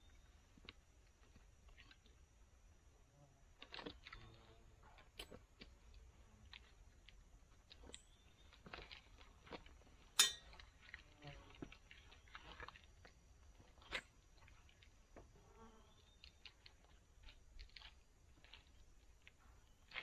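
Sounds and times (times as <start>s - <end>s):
boots knocking metal sticks: 10.2s - 10.5s
harness hardware clinking: 10.2s - 10.6s.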